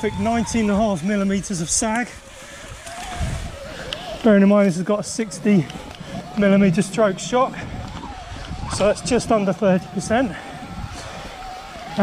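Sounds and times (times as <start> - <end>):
thin wavering motor whine: 0.0 - 12.0.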